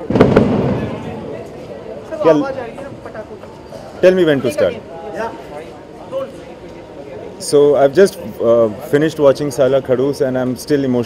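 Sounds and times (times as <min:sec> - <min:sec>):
sharp cracks: 0:00.0 - 0:01.6.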